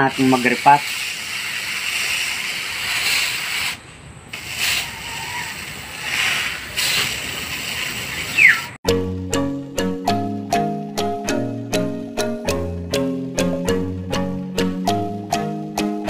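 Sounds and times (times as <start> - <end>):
steady rushing hiss: 0.0 - 8.8
plucked notes music: 8.8 - 16.0.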